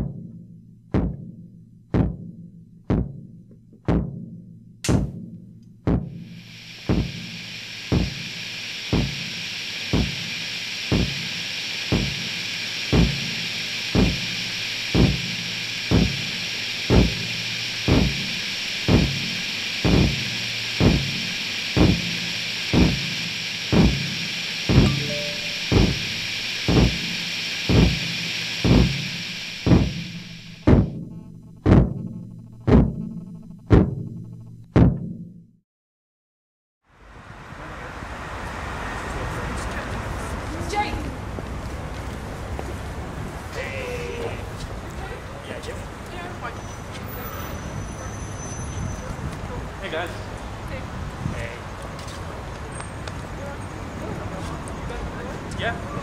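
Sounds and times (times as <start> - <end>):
kick drum beat: 0.0 - 8.3, 8.9 - 9.3, 9.9 - 10.3, 10.9 - 11.3, 11.9 - 12.3, 12.9 - 13.4, 14.0 - 14.4, 15.0 - 18.3, 18.9 - 35.3
high hiss: 6.0 - 31.0, 37.0 - 49.1, 49.8 - 52.3.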